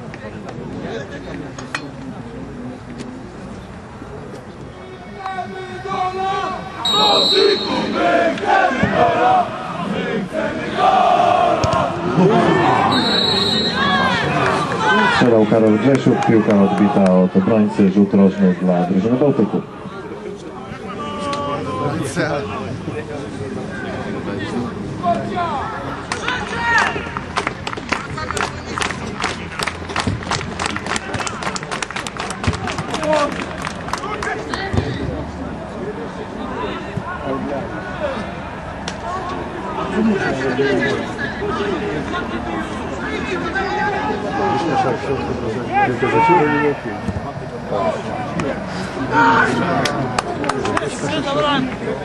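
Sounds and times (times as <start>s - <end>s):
men shouting and calling: 4.8s - 22.7s, 36.4s - 50.1s
men shouting: 5.4s - 13.1s, 43.0s - 46.8s
crowd clapping in rhythm: 27.1s - 34.7s.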